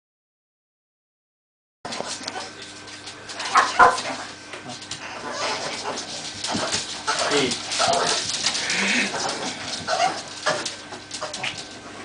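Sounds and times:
dogs barking: 3.3 - 11.7
dogs whining: 4.8 - 11.6.

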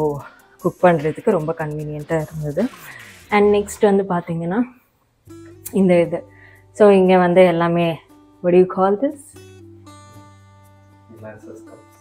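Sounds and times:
acoustic guitar chords: 5.3 - 12.0.

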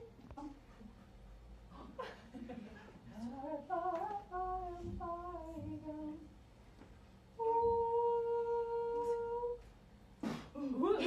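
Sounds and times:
woman singing a melody: 3.1 - 6.4, 7.4 - 9.7.

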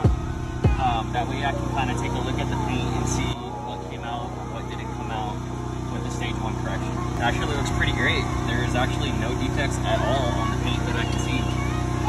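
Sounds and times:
faint voices: 0.0 - 12.0
low engine-like hum: 0.0 - 12.0.

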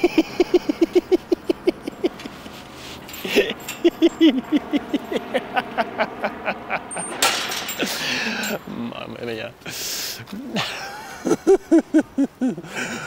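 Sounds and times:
man laughing hard: 0.0 - 2.4, 3.2 - 8.7, 9.7 - 13.0
chained iron gate clanking: 1.8 - 5.5, 6.8 - 8.7.

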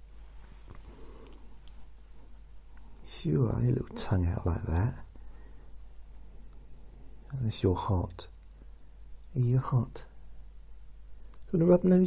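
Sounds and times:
dog breathing softly: 0.4 - 3.0.

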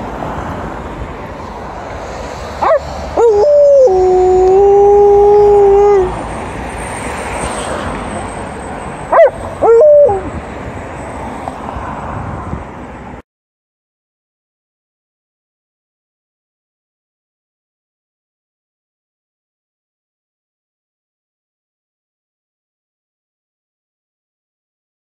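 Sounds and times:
dog howling: 2.6 - 6.2, 9.1 - 10.3
dog yelping: 2.6 - 6.2, 9.1 - 10.3.

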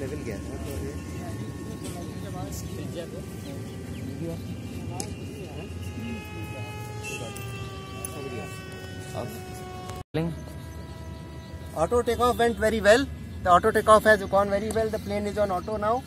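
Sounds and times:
model plane electric motor whine: 0.0 - 13.0.

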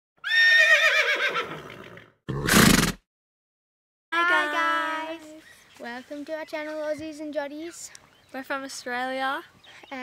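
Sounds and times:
horse whinnying: 0.2 - 3.0.

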